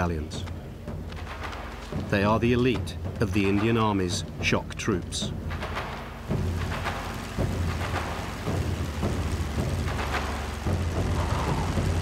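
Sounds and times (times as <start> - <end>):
propeller aircraft engines droning: 0.0 - 12.0
crackly hiss: 5.5 - 12.0.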